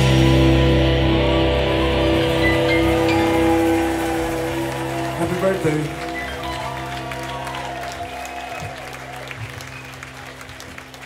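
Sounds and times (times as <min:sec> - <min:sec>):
rock band chord ringing out: 0:00.0 - 0:06.9
crowd cheering: 0:00.0 - 0:11.0.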